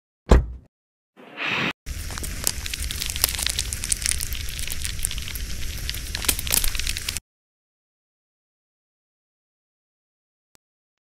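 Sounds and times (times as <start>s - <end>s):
campfire crackling: 1.9s - 7.2s.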